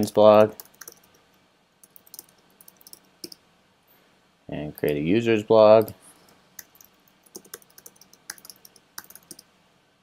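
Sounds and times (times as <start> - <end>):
computer keyboard typing: 0.0 - 1.2, 1.8 - 3.4, 6.6 - 9.4.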